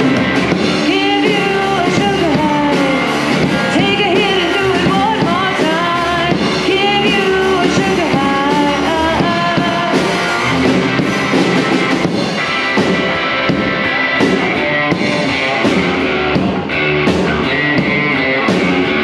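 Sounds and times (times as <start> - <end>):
live rock band playing: 0.0 - 19.0
woman singing: 0.7 - 10.5.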